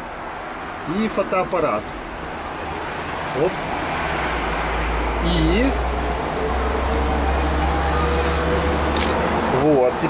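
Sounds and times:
bus engine rumble: 0.0s - 10.0s
road noise: 0.0s - 10.0s.

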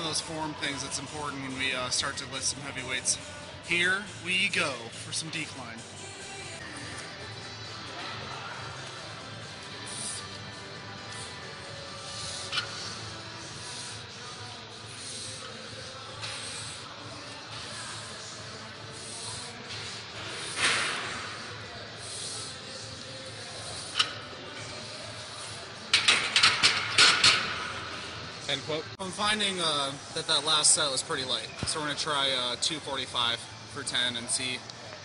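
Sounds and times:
faint music: 0.0s - 35.0s
gym background hiss: 0.0s - 35.0s.

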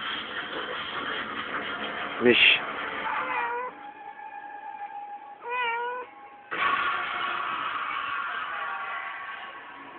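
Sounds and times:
cat meowing: 3.1s - 3.8s, 5.4s - 6.1s.

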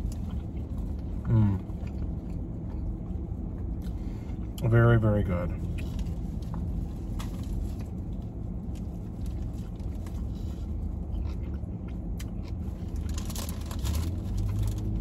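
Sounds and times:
man biting and chewing: 0.0s - 4.6s, 5.7s - 15.0s
low rumble in car cabin: 0.0s - 15.0s
paper wrapper crackling: 13.0s - 15.0s.

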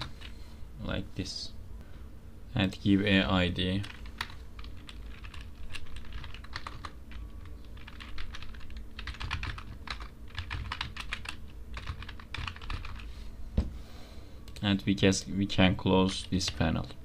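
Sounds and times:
keyboard typing: 3.8s - 13.1s.

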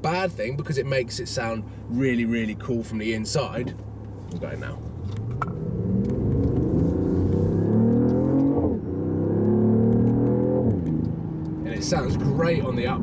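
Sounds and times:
car engine accelerating hard: 4.7s - 13.0s.

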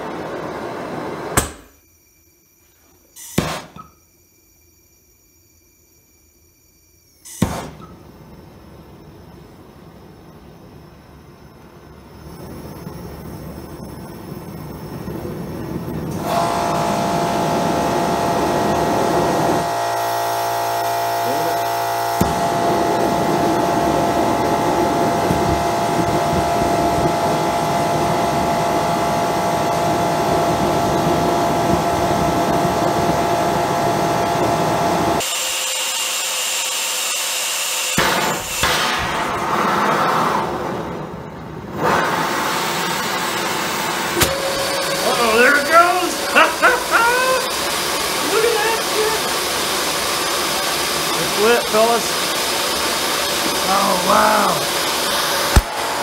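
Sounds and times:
burner rushing hiss: 7.0s - 35.5s, 38.0s - 56.0s.

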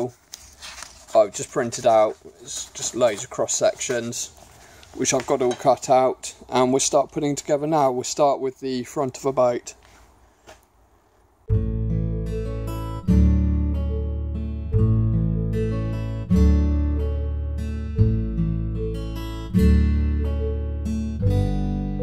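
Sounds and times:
acoustic guitar strumming chords: 11.5s - 22.0s.

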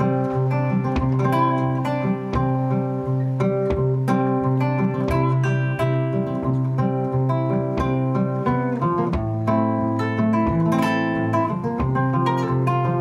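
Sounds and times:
acoustic guitar fingerpicking: 0.0s - 13.0s.

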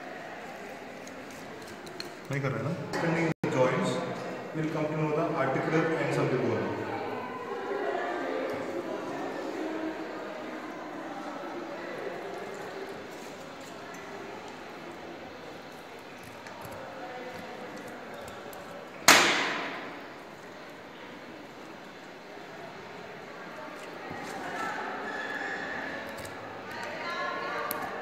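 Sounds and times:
faint indistinct voices: 0.0s - 28.0s.

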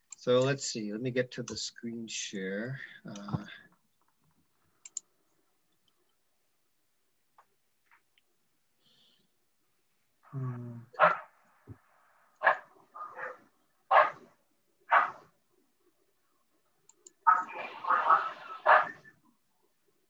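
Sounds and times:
dog barking: 11.0s - 11.3s, 12.4s - 14.2s, 14.9s - 15.2s, 17.3s - 19.1s.

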